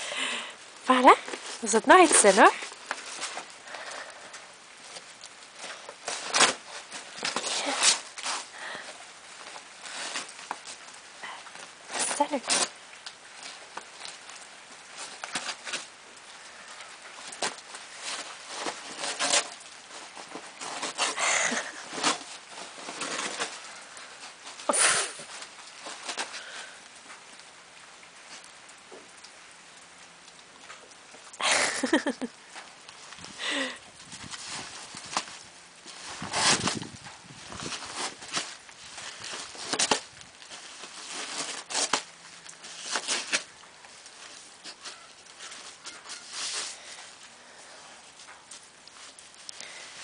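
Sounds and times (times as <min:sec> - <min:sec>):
dog tearing wrapping paper: 0:04.9 - 0:10.8, 0:11.9 - 0:12.8, 0:17.2 - 0:26.8, 0:35.9 - 0:43.5.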